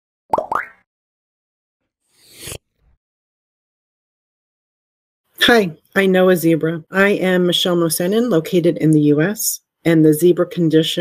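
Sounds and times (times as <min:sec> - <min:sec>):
rising bloop pops: 0:00.3 - 0:00.9.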